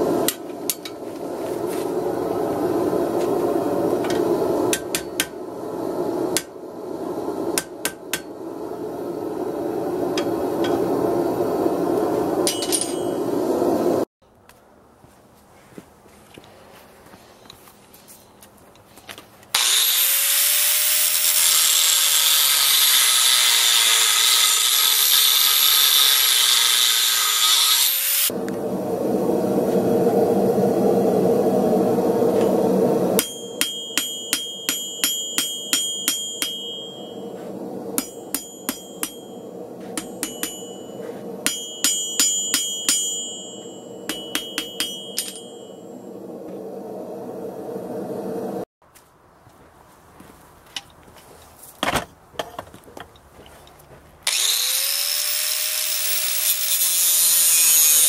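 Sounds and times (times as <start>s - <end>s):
hammer blows on anvil: 12.4s - 13.3s, 33.2s - 46.4s
angle grinder whining: 19.6s - 28.4s, 54.3s - 58.0s.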